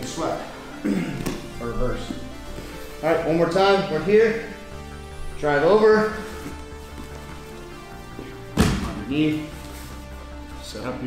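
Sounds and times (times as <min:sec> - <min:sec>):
background music: 0:00.0 - 0:11.0
body thumping on foam mat: 0:08.5 - 0:09.0.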